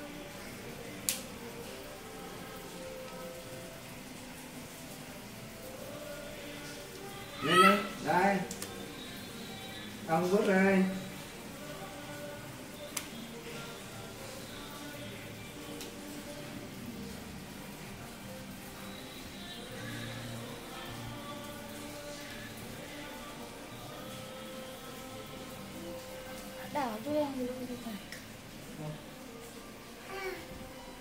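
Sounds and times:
faint background music: 0:00.0 - 0:31.0.

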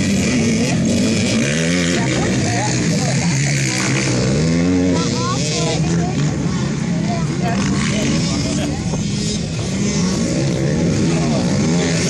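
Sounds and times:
dirt bike engines revving: 0:00.0 - 0:12.0.

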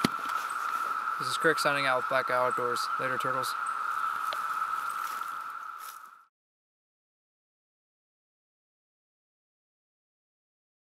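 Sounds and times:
cicadas ringing: 0:00.0 - 0:06.3.

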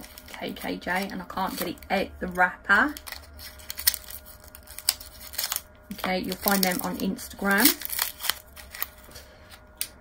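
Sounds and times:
gift wrapper crinkling: 0:00.0 - 0:01.9, 0:02.9 - 0:09.3.

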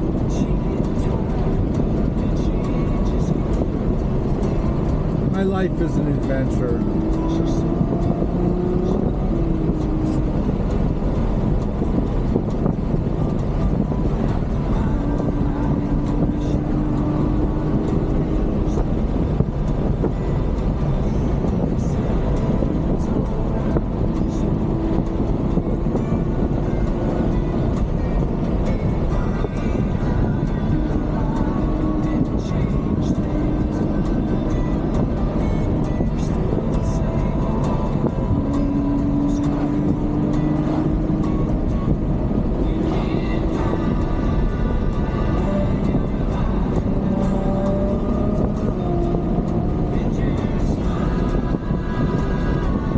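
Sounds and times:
car engine running: 0:00.0 - 0:52.9
road and tyre noise: 0:00.0 - 0:52.9.

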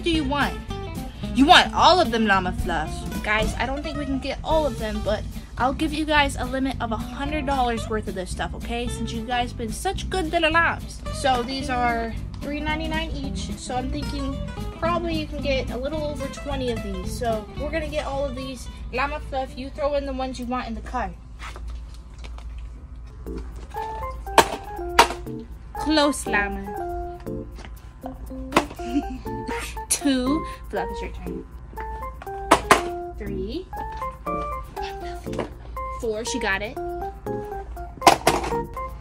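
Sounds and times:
background music of held notes: 0:00.0 - 0:20.0, 0:23.2 - 0:39.0
simple plinking melody: 0:23.2 - 0:39.0
toy box knocking into plastic cart: 0:38.0 - 0:38.6.

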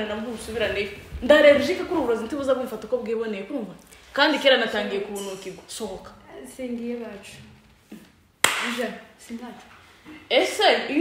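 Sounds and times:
woman talking: 0:00.0 - 0:07.5
sharp hand clap: 0:08.4 - 0:08.9.

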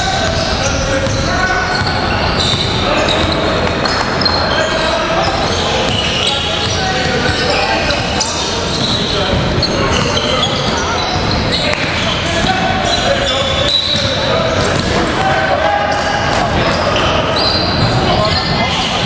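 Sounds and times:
voices in echoing gym: 0:00.0 - 0:19.0
ball bouncing on hardwood court: 0:05.8 - 0:08.1, 0:13.4 - 0:15.3.

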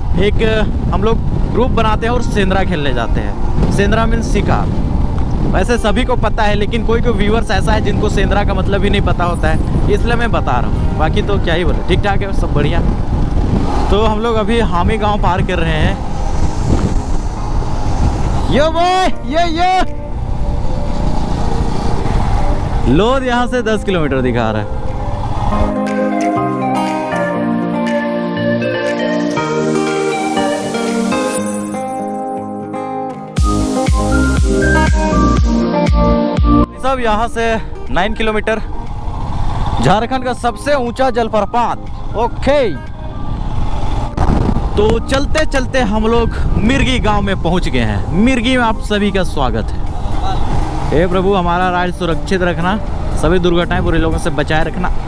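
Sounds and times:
wind noise: 0:00.0 - 0:25.8, 0:41.8 - 0:55.0
road noise: 0:00.0 - 0:55.0.

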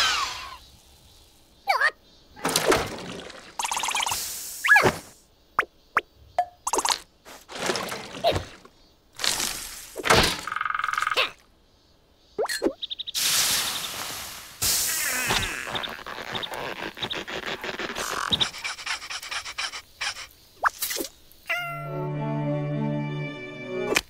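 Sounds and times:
squeaky noises: 0:01.7 - 0:02.0, 0:15.0 - 0:21.9
music: 0:21.7 - 0:24.0.

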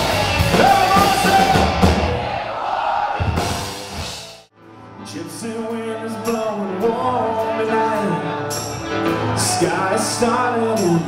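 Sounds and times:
rock band music with drums: 0:00.0 - 0:04.5.

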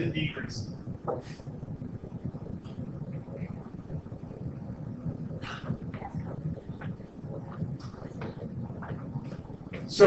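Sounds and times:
low rumble of room noise: 0:00.0 - 0:10.0.

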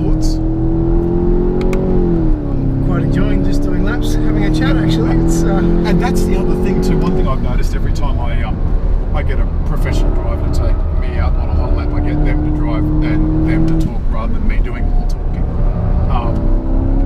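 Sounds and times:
car engine revving: 0:00.0 - 0:17.0
road rumble: 0:00.0 - 0:17.0.

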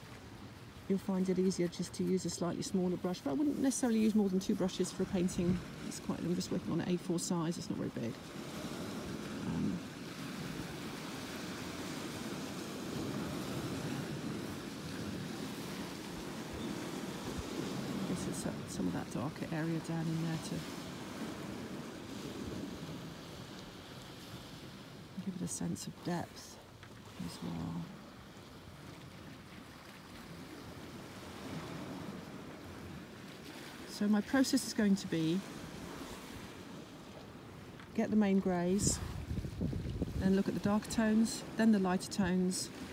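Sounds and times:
sea surf: 0:00.0 - 0:42.9
wind noise on microphone: 0:38.6 - 0:41.0.

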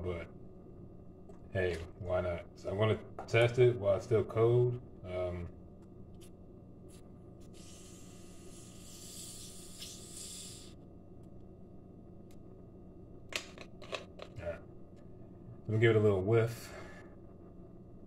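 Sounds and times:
soda hissing from bottle: 0:07.5 - 0:10.8.

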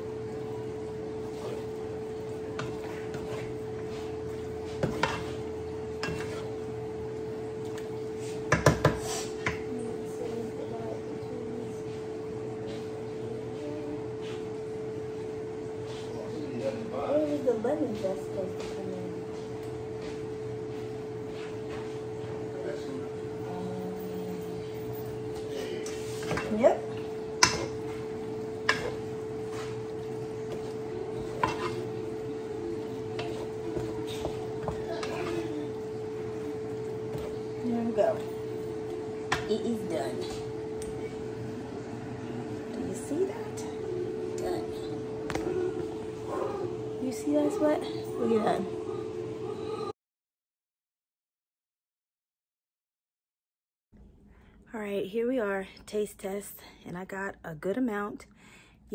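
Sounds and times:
steady hum: 0:00.0 - 0:49.9
wooden spoon scraping a skillet: 0:01.2 - 0:06.7, 0:08.0 - 0:09.6, 0:25.6 - 0:37.5
wooden spoon knocking on pan: 0:08.5 - 0:09.6
spoon scraping and tapping: 0:31.3 - 0:31.9.

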